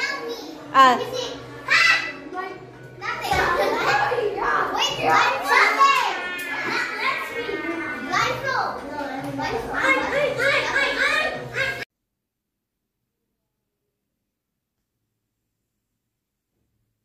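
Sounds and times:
children talking and calling out: 0:00.0 - 0:11.9.

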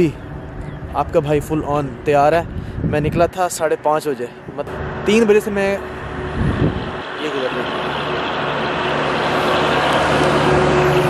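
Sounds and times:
heavy truck passing: 0:03.6 - 0:11.0.

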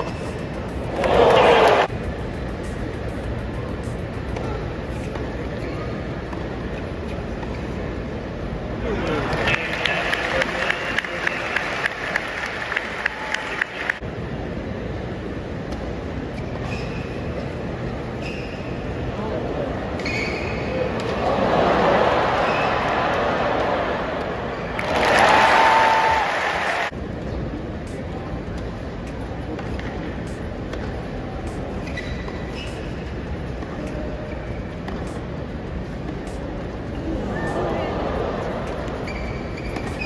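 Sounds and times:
stadium ambience rumble: 0:00.0 - 0:40.0.

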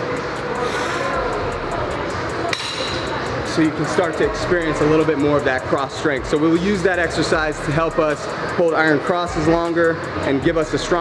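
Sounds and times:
gym background noise: 0:00.0 - 0:11.0.

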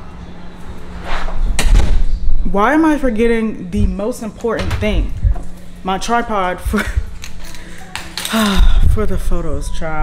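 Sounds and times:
woman sighing: 0:08.3 - 0:08.9.

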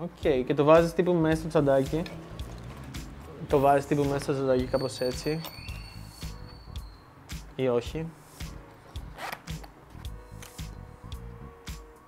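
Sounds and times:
fabric pouch rustling: 0:08.4 - 0:10.1.

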